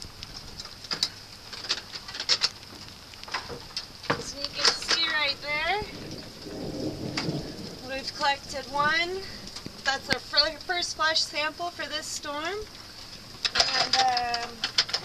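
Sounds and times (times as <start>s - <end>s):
rustle: 0.0s - 15.0s
steady rain hiss: 0.0s - 15.0s.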